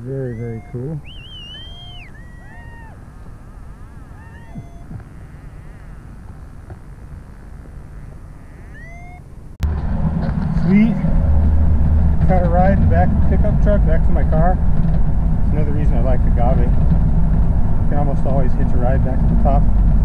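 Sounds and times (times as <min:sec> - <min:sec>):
birds chirping: 0:00.0 - 0:09.6
truck engine and road noise: 0:00.0 - 0:20.0.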